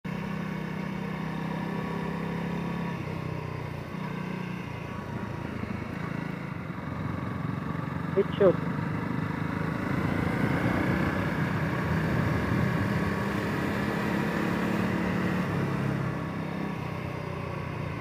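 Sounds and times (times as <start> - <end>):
motorcycle engine running: 0.1 - 18.0
road and wind noise: 0.1 - 18.0.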